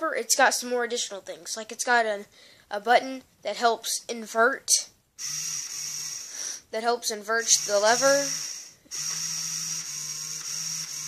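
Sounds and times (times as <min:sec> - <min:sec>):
small electric motor whining: 0:05.2 - 0:06.5, 0:07.4 - 0:11.0.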